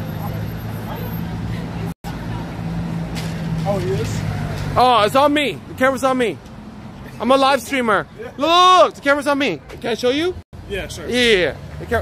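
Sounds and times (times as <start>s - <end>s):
low traffic hum: 0.0s - 12.0s.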